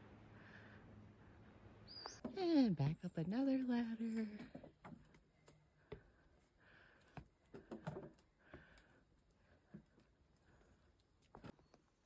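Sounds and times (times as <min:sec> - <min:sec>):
faint breathing: 0:00.2 - 0:01.7, 0:05.7 - 0:11.0.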